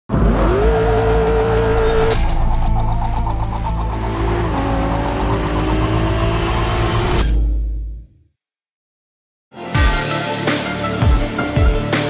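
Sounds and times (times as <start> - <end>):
race car engine revving: 0.1 - 7.1.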